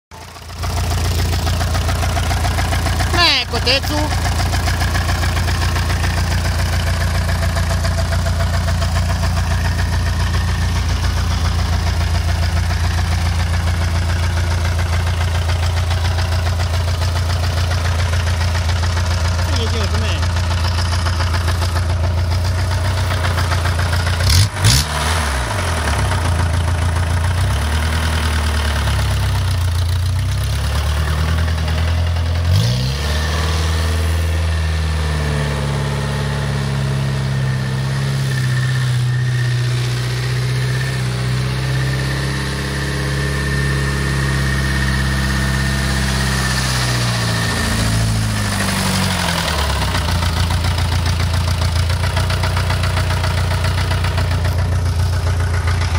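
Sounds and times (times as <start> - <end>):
tractor engine idling and revving: 0.0 - 55.9.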